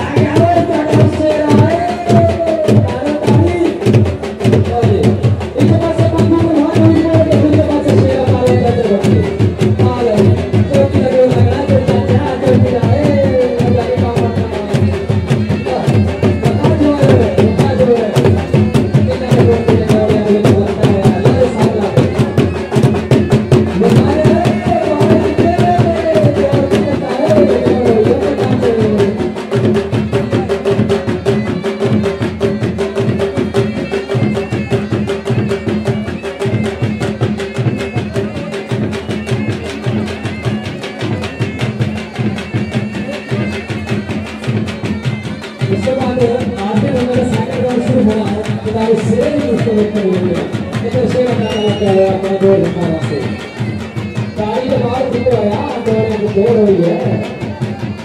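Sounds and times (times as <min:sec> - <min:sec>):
fast drumming: 0:00.0 - 0:58.0.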